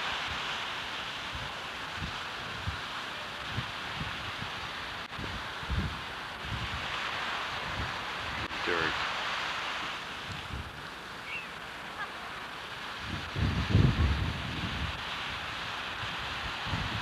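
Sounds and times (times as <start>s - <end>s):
surf on beach: 0.0s - 17.0s
wind buffeting microphone: 1.2s - 9.0s, 10.0s - 17.0s.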